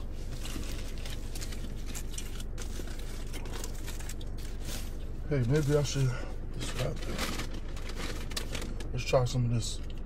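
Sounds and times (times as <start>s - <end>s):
foil wrapper crinkling: 0.0s - 10.0s
steady low hum: 0.0s - 10.0s.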